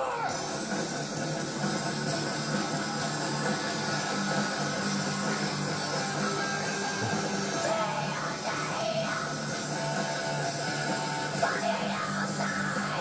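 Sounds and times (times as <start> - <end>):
rock band instrumental on tv speaker: 0.0 - 13.0.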